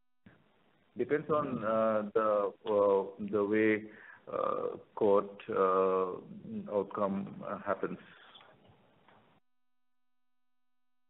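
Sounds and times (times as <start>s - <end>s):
faint steady hum: 0.2s - 9.4s.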